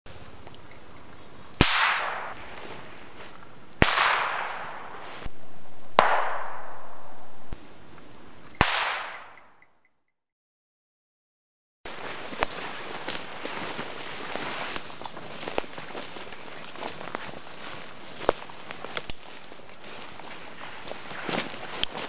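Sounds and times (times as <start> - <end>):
sharp bangs with ringing decay: 1.6 - 2.5, 3.8 - 7.6, 8.6 - 9.6.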